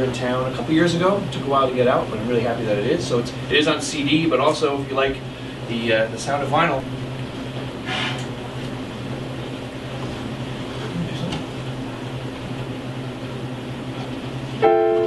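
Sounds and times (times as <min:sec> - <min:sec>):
steady low hum: 0:00.0 - 0:15.0
digital piano chord: 0:14.6 - 0:15.0.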